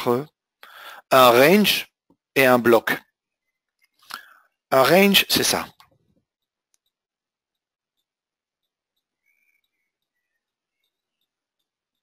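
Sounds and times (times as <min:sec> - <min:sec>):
faint high chirps: 0:03.2 - 0:04.0, 0:06.3 - 0:12.0
soft ticks: 0:05.8 - 0:12.0.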